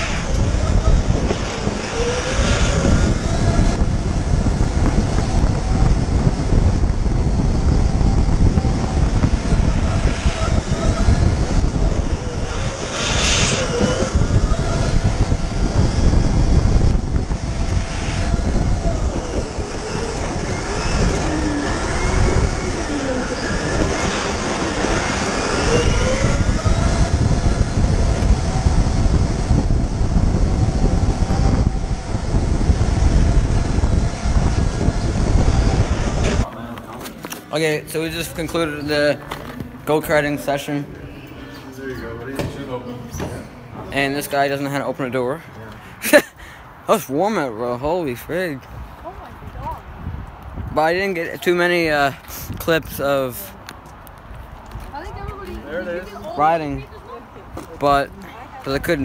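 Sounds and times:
go-kart engine rumbling: 0:00.0 - 0:39.9
wind buffeting microphone: 0:00.0 - 0:59.0.

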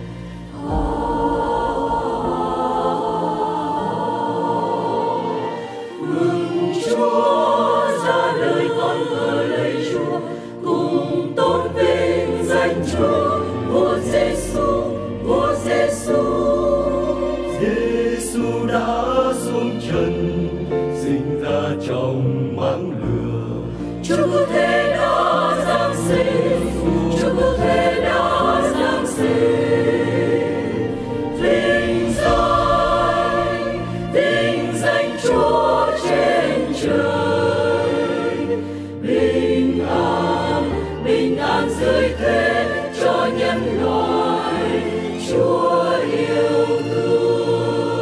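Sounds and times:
mixed choir singing in harmony: 0:00.0 - 0:48.0
sustained low bass notes: 0:30.8 - 0:35.1.

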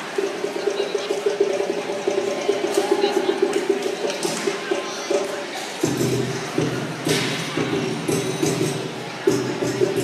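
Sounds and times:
crowd chatter in a large hall: 0:00.0 - 0:10.0.

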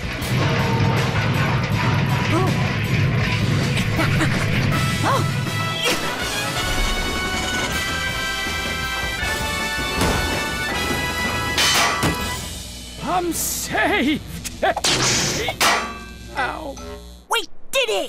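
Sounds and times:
action music: 0:00.0 - 0:17.4
loud crash: 0:06.1 - 0:09.0
robot crashing and clattering: 0:09.4 - 0:12.4.

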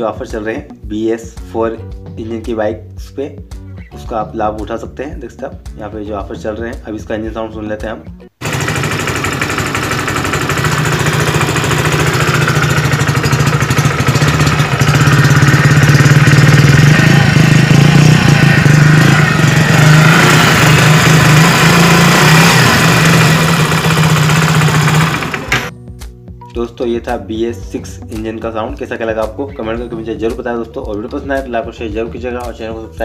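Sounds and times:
motorcycle engine idling: 0:08.4 - 0:25.7.

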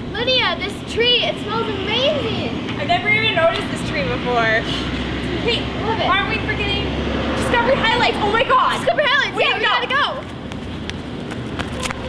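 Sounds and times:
girls talking: 0:00.1 - 0:10.4.

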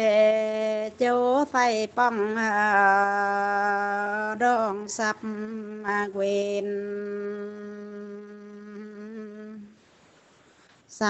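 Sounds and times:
person holding a long sung note: 0:00.0 - 0:09.8.

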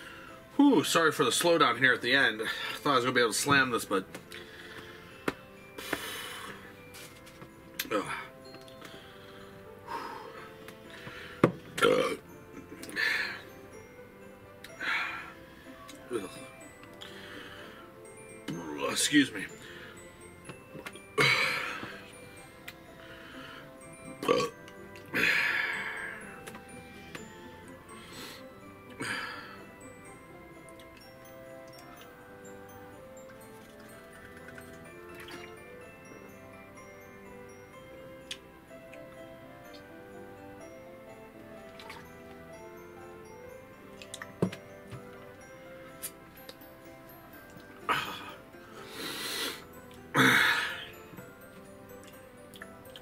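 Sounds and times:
soft background music: 0:00.0 - 0:53.0
man breathing heavily: 0:04.3 - 0:06.8, 0:08.0 - 0:11.6, 0:14.7 - 0:18.0, 0:22.8 - 0:23.8, 0:25.1 - 0:27.2, 0:27.8 - 0:29.8, 0:47.8 - 0:50.9
man burping: 0:11.8 - 0:12.3, 0:15.9 - 0:16.6, 0:21.2 - 0:22.0, 0:24.1 - 0:26.0, 0:47.8 - 0:48.4, 0:50.1 - 0:50.9
long breath out: 0:47.9 - 0:50.9.

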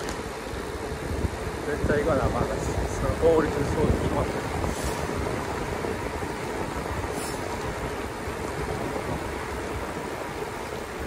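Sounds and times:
bicycle tyres rolling on asphalt: 0:00.0 - 0:11.0
wind on the microphone: 0:00.0 - 0:11.0.

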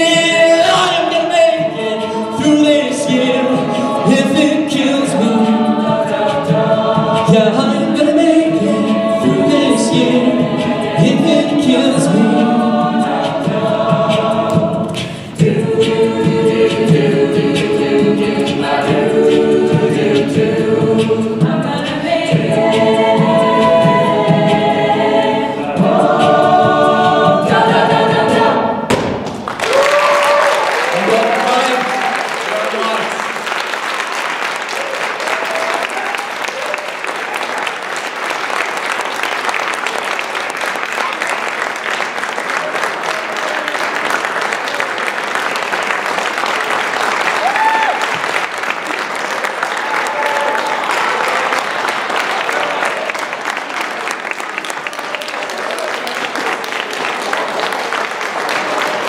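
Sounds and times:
male soloist singing: 0:00.0 - 0:27.6
a cappella group singing: 0:00.0 - 0:28.9
audience applause and cheers: 0:29.0 - 0:59.0.

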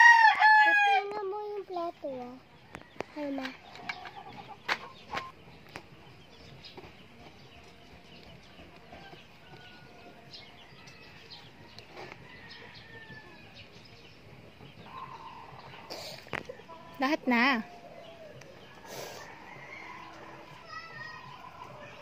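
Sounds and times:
faint chickens clucking: 0:00.0 - 0:22.0.

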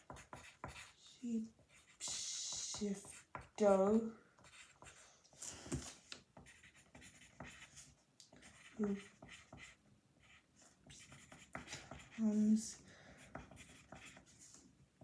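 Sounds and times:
pencil scratching on paper: 0:00.0 - 0:05.1, 0:06.4 - 0:14.6.

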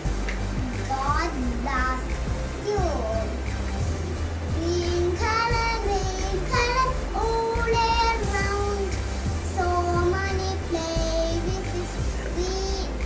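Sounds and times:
girl singing: 0:00.8 - 0:03.4, 0:04.5 - 0:13.0.

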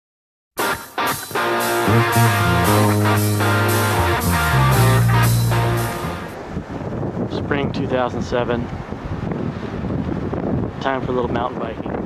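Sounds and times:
wind buffeting microphone: 0:06.2 - 0:12.0.

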